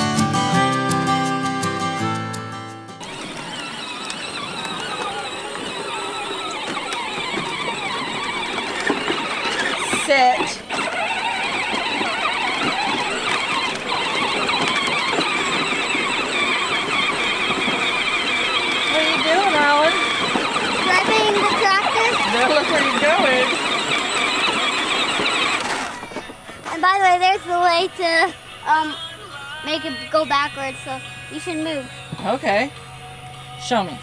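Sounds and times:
toy tractor motor whine: 0:03.0 - 0:33.5
child's voice: 0:20.7 - 0:23.0, 0:26.6 - 0:29.1, 0:29.7 - 0:32.0.

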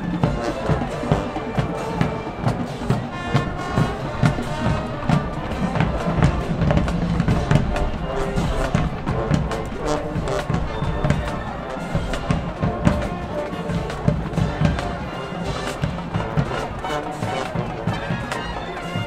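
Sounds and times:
drumline drums and cymbals: 0:00.0 - 0:19.0
marching band brass: 0:00.0 - 0:19.0.

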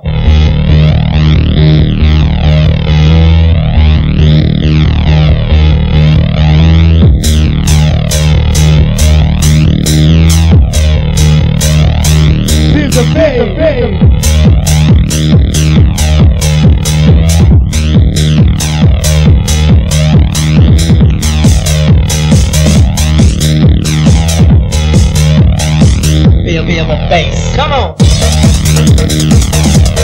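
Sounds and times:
phasing synth sweeps: 0:00.0 - 0:27.3
electronic dance music: 0:00.0 - 0:30.0
heavy bass line: 0:00.0 - 0:30.0.

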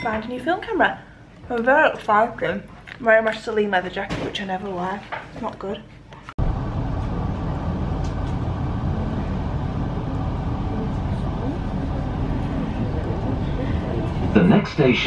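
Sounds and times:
train carriage rumbling at speed: 0:06.4 - 0:15.0.

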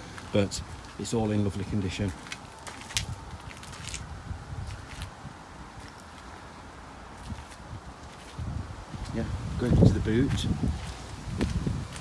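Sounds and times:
footsteps: 0:02.0 - 0:05.2, 0:07.2 - 0:12.0.

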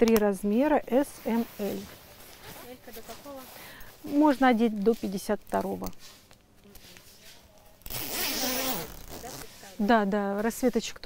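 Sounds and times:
zipper rasp on jacket: 0:07.8 - 0:10.0.

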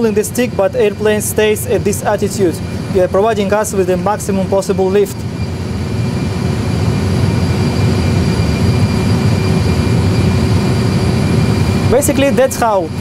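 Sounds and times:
faint high engine whine: 0:00.0 - 0:13.0
jet engine low rumble: 0:00.0 - 0:13.0.

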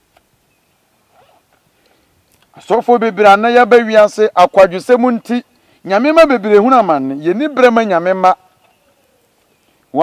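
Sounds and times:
faint animal call: 0:08.6 - 0:09.4.

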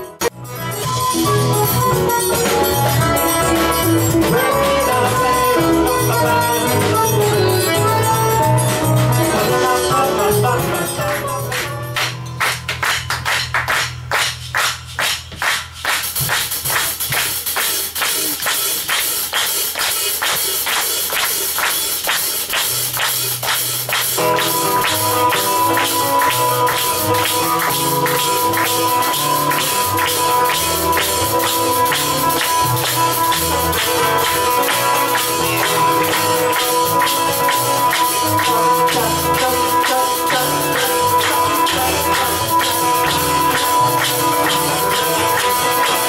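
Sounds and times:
jazz band playing: 0:00.0 - 0:46.0
shaker and tambourine strokes: 0:13.4 - 0:46.0.

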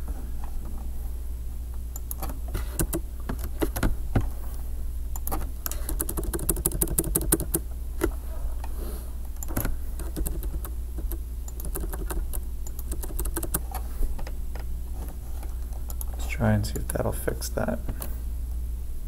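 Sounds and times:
steady low hum: 0:00.0 - 0:19.0
computer keyboard typing: 0:02.0 - 0:03.9, 0:05.2 - 0:07.6, 0:09.4 - 0:13.8.

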